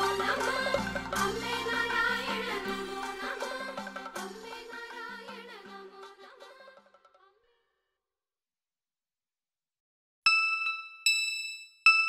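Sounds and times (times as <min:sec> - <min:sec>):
bell-like chime: 0:10.3 - 0:12.0.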